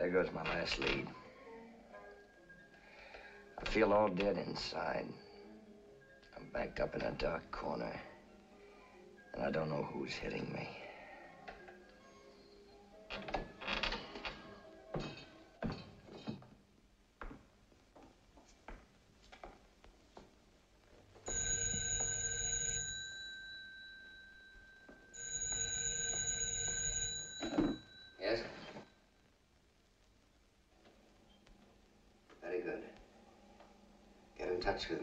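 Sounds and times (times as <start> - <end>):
telephone bell ringing: 21.2 - 28.8
phone being answered: 21.3 - 24.5, 25.1 - 28.8.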